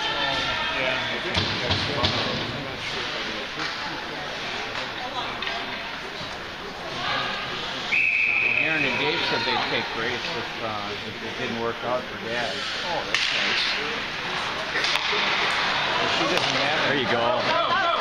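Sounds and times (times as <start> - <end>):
sticks and puck cracking: 3.6 - 3.9, 13.1 - 17.6
referee's whistle: 7.9 - 9.1
people shouting: 17.2 - 18.0.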